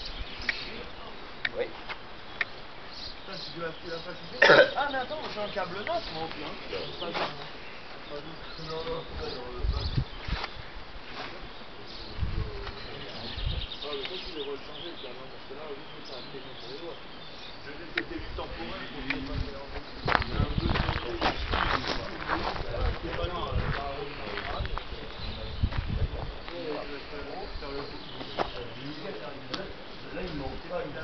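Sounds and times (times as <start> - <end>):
faint voices talking: 0.0 - 31.0
microphone handling rumble: 18.2 - 26.5.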